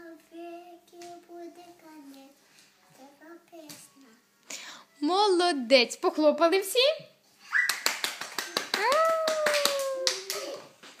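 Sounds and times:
girl squealing: 7.4s - 7.8s.

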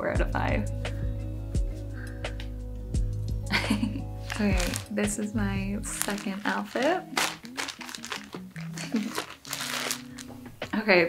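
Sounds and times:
background music: 0.0s - 11.0s
plastic bag crinkling: 4.2s - 5.0s, 5.9s - 10.6s.

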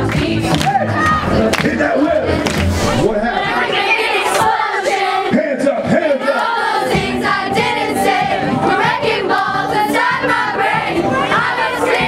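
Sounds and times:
music: 0.0s - 12.0s
children shouting and singing: 3.2s - 5.4s.

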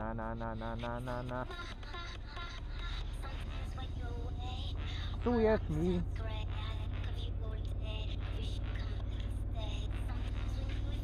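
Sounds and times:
song with singing voice: 0.0s - 4.1s
motorcycle engine droning: 0.0s - 11.0s.

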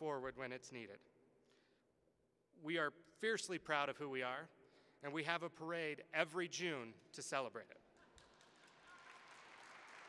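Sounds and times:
audience applauding: 8.1s - 10.0s.

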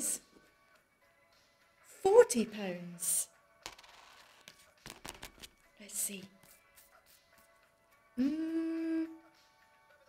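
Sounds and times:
scratch card being scratched: 3.6s - 5.6s, 6.4s - 7.5s.

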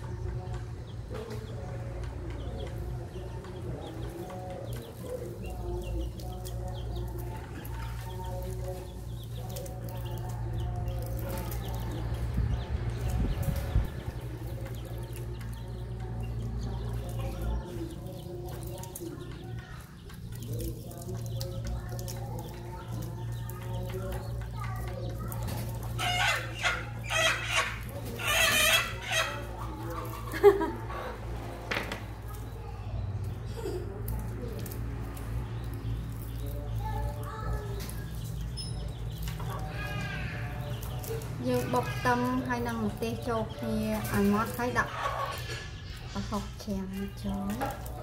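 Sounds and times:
chickens clucking: 0.0s - 48.0s.

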